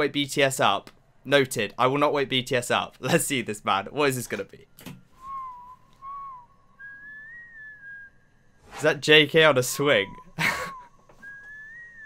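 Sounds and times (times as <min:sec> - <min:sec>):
person whistling a tune: 0:05.2 - 0:08.2, 0:10.1 - 0:12.0.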